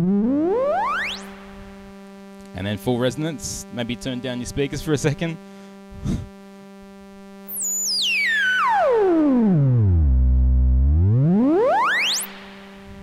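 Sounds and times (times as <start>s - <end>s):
synthesizer tone gliding in pitch: 0.0s - 1.9s, 7.5s - 13.0s.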